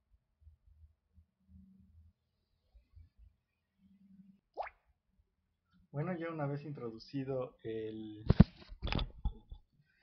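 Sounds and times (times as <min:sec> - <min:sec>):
faint low hum: 0:00.0 - 0:08.2.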